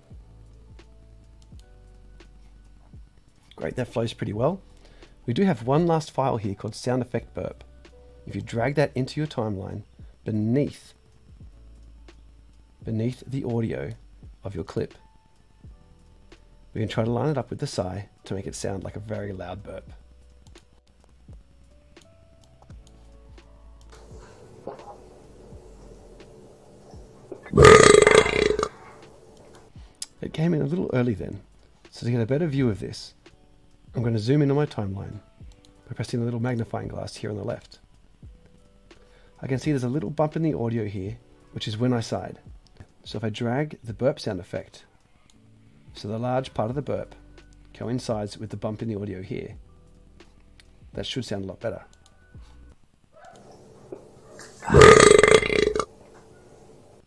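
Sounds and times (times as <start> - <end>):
deep rattling belch: 27.4 - 28.9, 54.6 - 55.9
loud burp: 27.4 - 28.9, 54.6 - 55.9.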